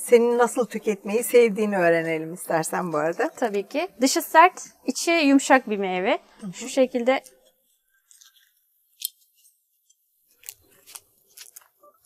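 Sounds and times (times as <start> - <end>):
knife cutting fruit skin: 10.3 - 12.0.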